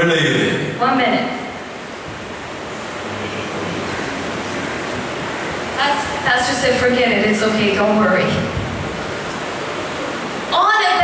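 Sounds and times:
steady rushing hiss: 0.0s - 11.0s.

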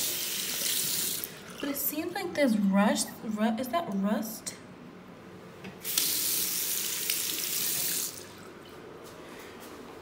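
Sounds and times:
faucet water running into sink: 0.0s - 1.9s, 5.8s - 8.4s.

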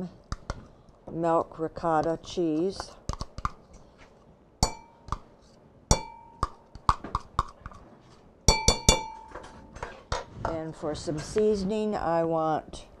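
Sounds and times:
metal spoon tapping ceramic bowl: 4.6s - 5.2s, 5.9s - 7.6s, 8.5s - 9.4s.

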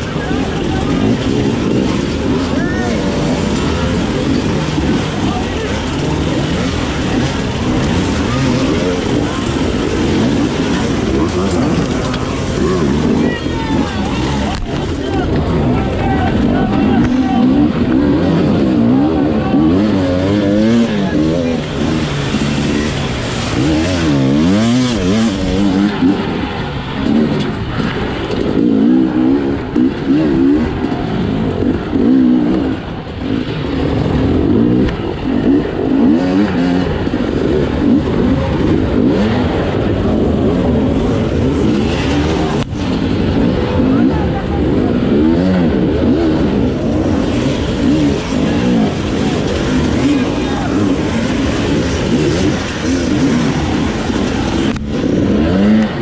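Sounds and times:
two-stroke motorcycle engine revving: 0.0s - 56.0s.

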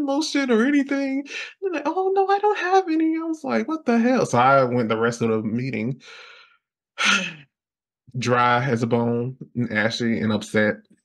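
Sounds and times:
man sighing: 7.0s - 7.5s.

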